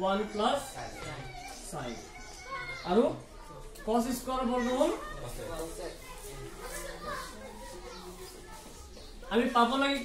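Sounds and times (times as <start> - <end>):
faint children's voices: 0.0 - 10.0.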